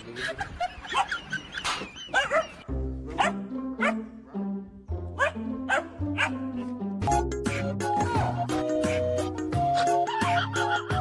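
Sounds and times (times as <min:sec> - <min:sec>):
puppy yipping and whining: 0:02.0 - 0:02.6
bouncy music: 0:02.2 - 0:11.0.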